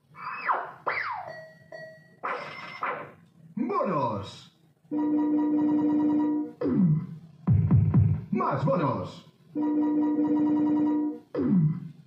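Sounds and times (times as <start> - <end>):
slot machine falling swoops: 2.2 - 3.2
slot machine held tone: 5.0 - 6.6, 9.6 - 11.3.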